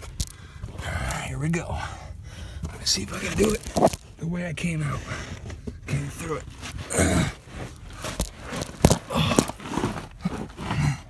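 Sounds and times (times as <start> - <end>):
scraping and rustling of crawling: 2.6 - 11.0
phone rubbing against rock: 3.0 - 4.0.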